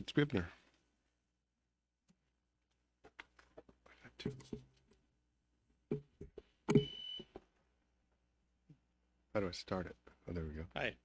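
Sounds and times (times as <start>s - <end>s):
short electronic beep: 6.7s - 7.3s.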